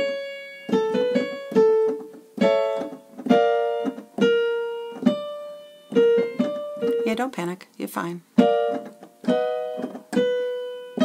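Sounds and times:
piano playing notes and chords: 0.0s - 7.3s, 8.3s - 11.0s.

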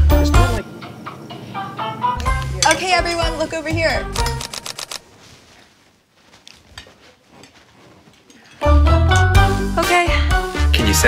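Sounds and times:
dishes and cutlery clinking: 2.2s - 3.3s, 6.7s - 9.4s.

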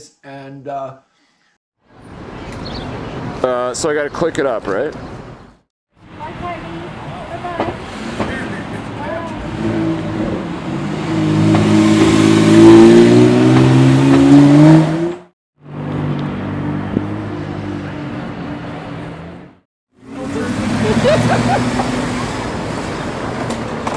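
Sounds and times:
sports car accelerating: 7.8s - 23.3s.

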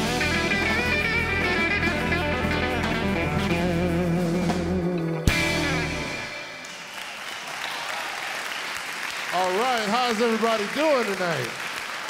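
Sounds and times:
electric guitar chord ringing: 0.0s - 6.7s
audience applauding: 6.3s - 12.0s.

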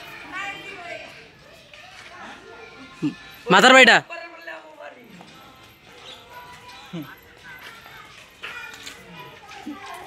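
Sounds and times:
faint voices talking and calling: 0.0s - 10.0s.

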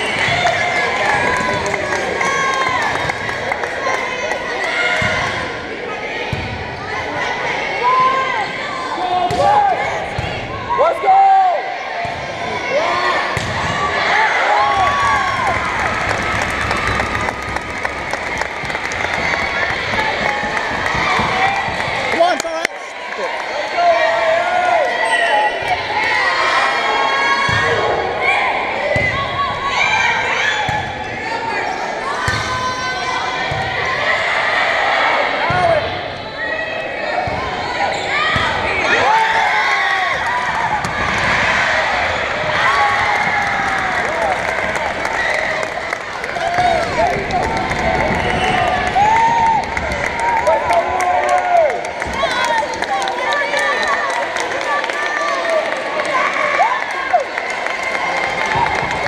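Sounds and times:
people talking and shouting: 0.0s - 59.0s.

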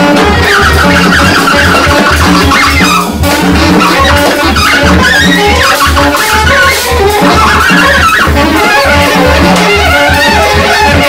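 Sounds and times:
improvised jazz band playing: 0.0s - 11.0s
saxophone squealing high line: 0.0s - 11.0s.

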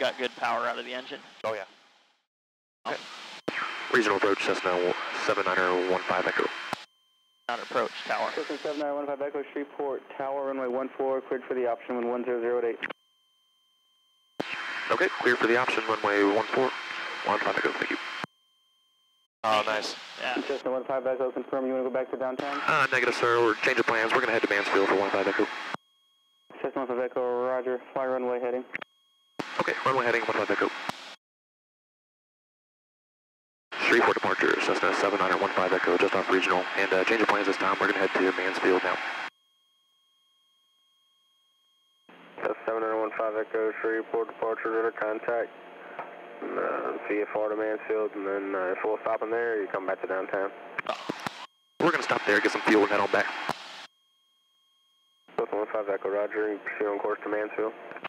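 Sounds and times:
faint high electronic whine: 0.0s - 1.7s, 2.9s - 31.2s, 33.8s - 58.0s
faint steady tones: 2.9s - 31.1s, 33.8s - 58.0s
man's voice: 4.0s - 6.5s, 7.5s - 12.8s, 19.4s - 25.5s, 33.8s - 39.0s, 51.8s - 53.4s.

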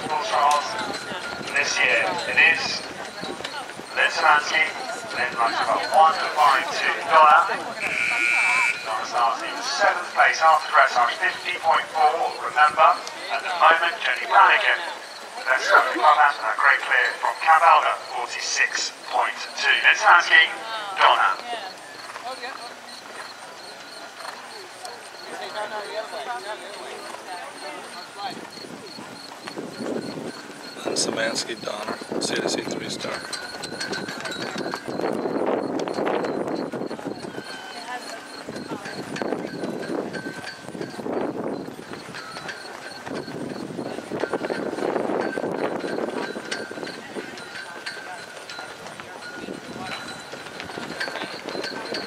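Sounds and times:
faint voices: 0.0s - 52.0s.

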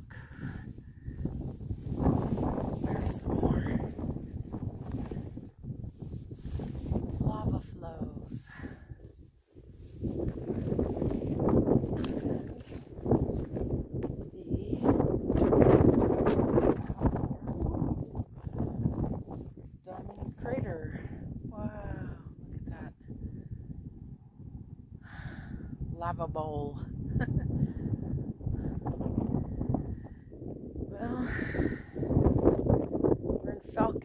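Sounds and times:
footsteps on rough rock: 10.1s - 14.3s.

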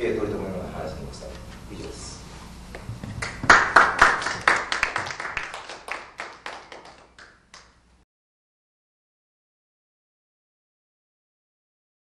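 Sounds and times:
small audience clapping: 2.8s - 7.8s.

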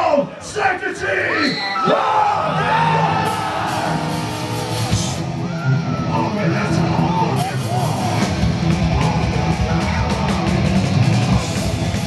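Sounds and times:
crowd yelling and cheering: 0.0s - 12.0s
metal band playing: 2.4s - 12.0s.

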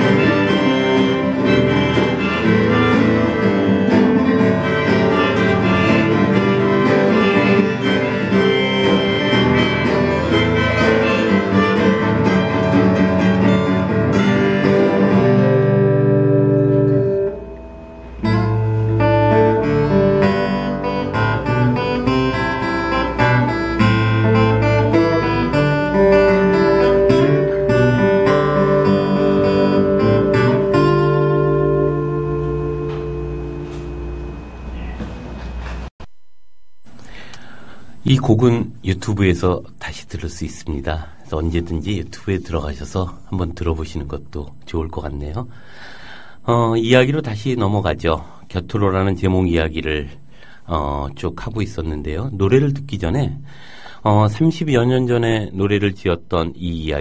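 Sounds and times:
acoustic guitars playing: 0.0s - 36.0s, 36.8s - 54.0s.

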